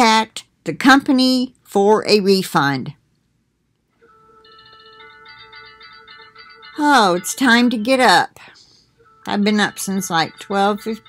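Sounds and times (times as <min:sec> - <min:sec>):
faint phone alarm melody: 0:04.0 - 0:11.0.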